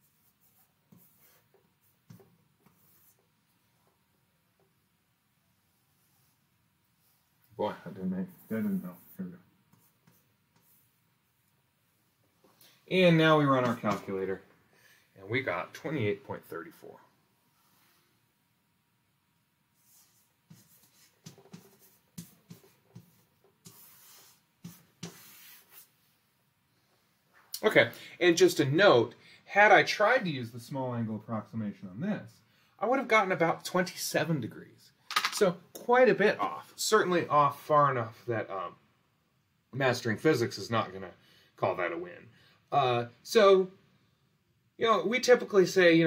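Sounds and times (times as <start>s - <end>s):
chalk scratching on chalkboard: 0.0s - 3.3s, 8.2s - 11.4s, 19.8s - 26.0s
chalk tapping: 0.0s - 3.3s, 9.7s - 10.9s, 19.8s - 25.9s.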